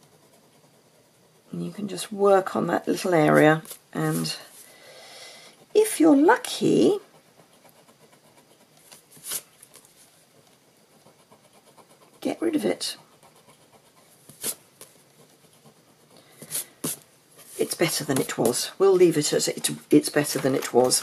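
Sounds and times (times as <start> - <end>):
eraser rubbing on cardstock: 6.9 - 9.5, 13.2 - 14.6.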